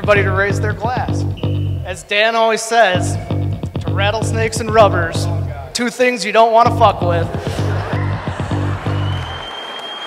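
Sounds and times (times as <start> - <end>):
background music with bass line: 0.0 - 2.1, 3.0 - 5.8, 6.6 - 9.5
guests applauding: 7.6 - 10.0.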